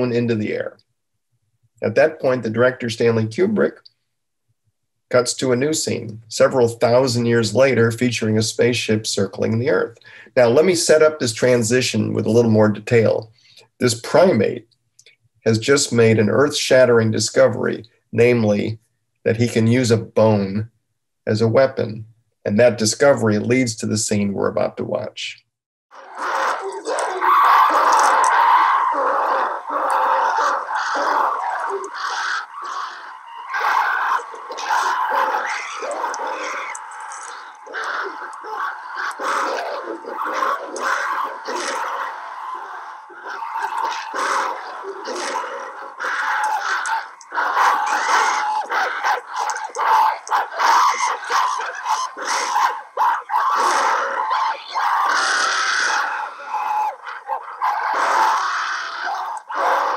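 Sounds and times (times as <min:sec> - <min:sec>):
apes calling and screaming: 0:00.0 - 0:00.8, 0:25.9 - 0:59.9.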